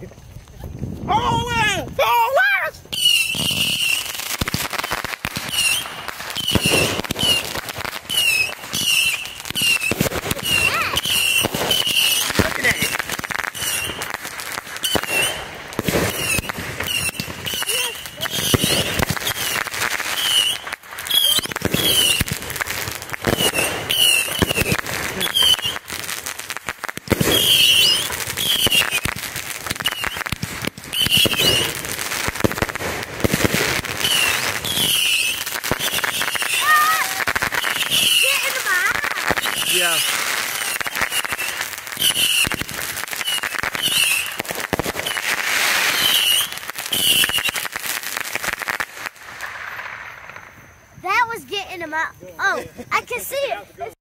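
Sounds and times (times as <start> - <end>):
firework bangs and crackling: 0.0 - 54.0.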